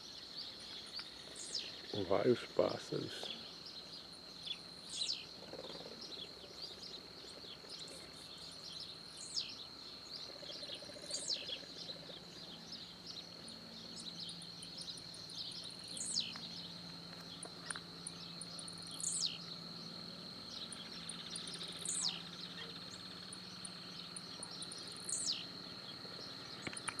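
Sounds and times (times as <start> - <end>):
small birds rapid high ticks: 0.2 - 27.0
high-pitched insect drone: 1.2 - 27.0.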